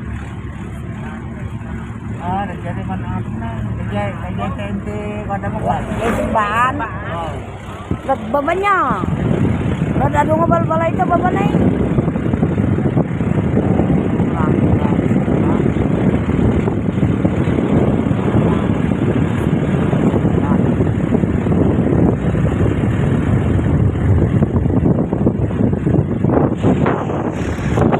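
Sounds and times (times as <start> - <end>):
vehicle rumble: 0.0 - 27.9
wind buffeting microphone: 0.0 - 27.9.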